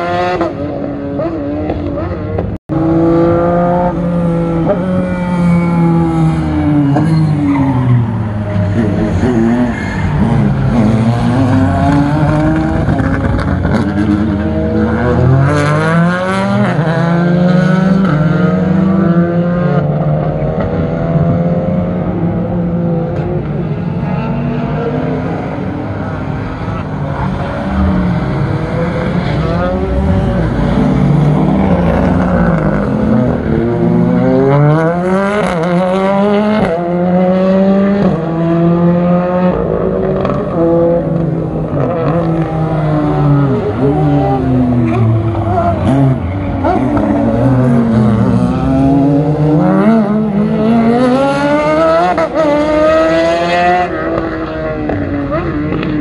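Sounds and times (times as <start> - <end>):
racing car engines revving: 0.0 - 56.0.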